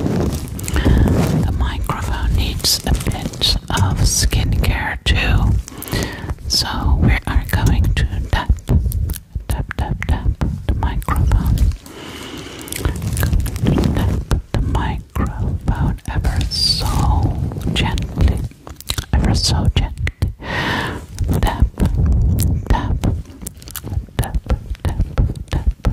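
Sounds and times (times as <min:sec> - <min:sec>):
microphone being touched and brushed: 0:00.0 - 0:25.9
close breathy whispering: 0:00.5 - 0:25.9.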